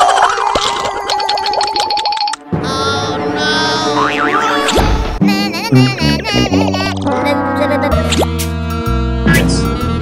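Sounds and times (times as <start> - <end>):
music: 2.3 - 10.0
cartoon sound effects: 2.6 - 8.3.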